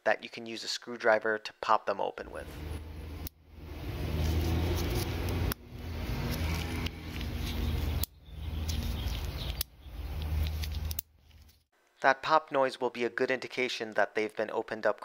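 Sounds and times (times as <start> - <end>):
low hum: 2.3 - 11.0.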